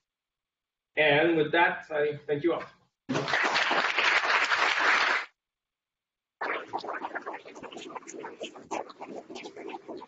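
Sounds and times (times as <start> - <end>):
audience applauding: 3.1 - 5.3.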